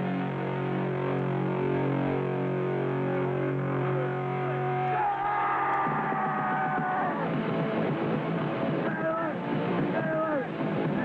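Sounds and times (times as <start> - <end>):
guitar amplifier feedback: 0.0 - 7.2.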